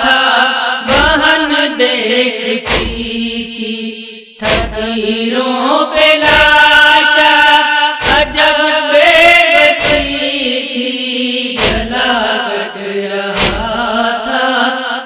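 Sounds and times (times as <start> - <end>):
woman chanting a lament: 0.0 - 15.0
heavy thumps: 0.9 - 1.2, 2.6 - 3.2, 4.4 - 4.9, 8.0 - 8.4, 9.8 - 10.2, 11.6 - 12.0, 13.4 - 13.9.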